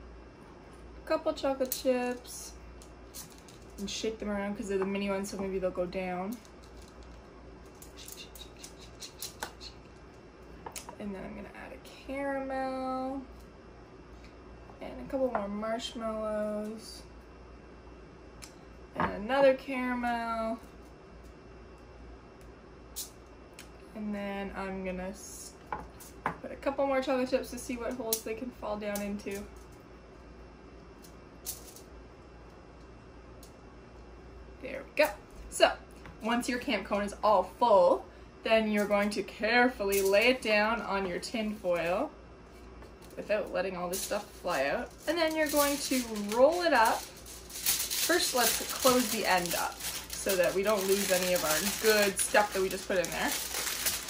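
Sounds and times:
chocolate chips dropping clicks: 6.3s - 9.8s
small pieces rattling in a cone: 43.9s - 54.0s.

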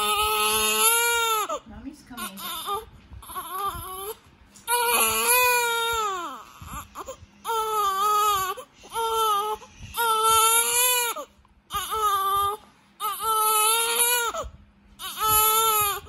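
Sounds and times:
infant crying: 0.0s - 1.6s, 2.2s - 16.0s.

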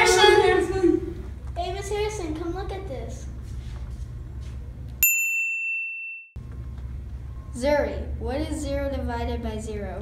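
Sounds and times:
electronic ding chime: 5.0s - 6.4s.

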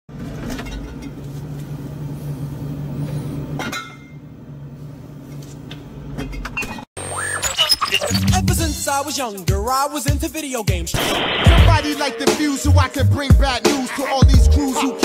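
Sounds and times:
intro music with rising sweep: 11.0s - 13.3s.

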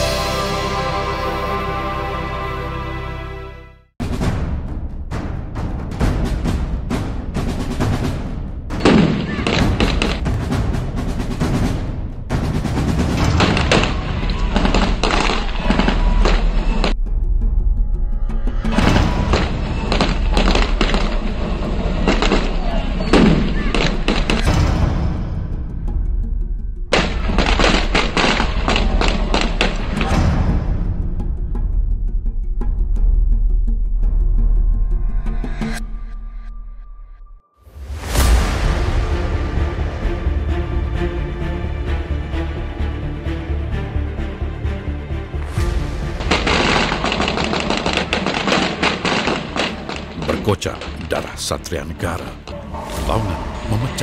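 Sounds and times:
gunshots: 46.2s - 51.3s.

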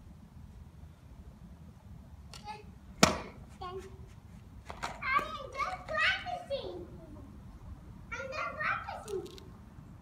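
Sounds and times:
child calling out: 8.1s - 9.4s.

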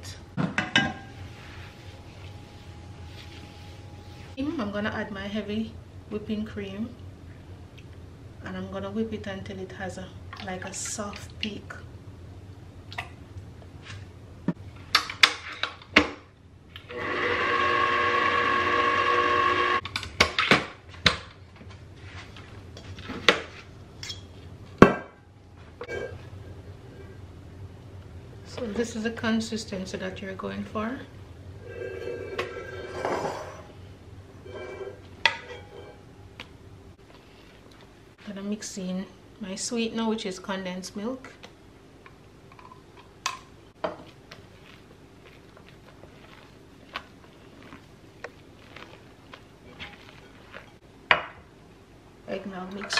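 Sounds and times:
stand mixer motor whirring: 16.9s - 19.8s.

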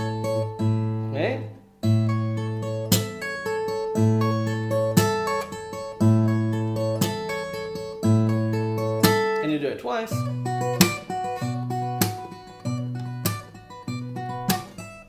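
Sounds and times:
fingerpicked acoustic guitar: 0.0s - 15.0s.

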